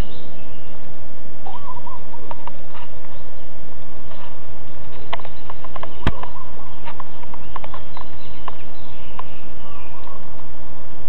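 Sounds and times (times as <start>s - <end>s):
steady background noise: 0.0s - 11.0s
bird warbling call: 1.4s - 2.4s, 4.9s - 10.4s.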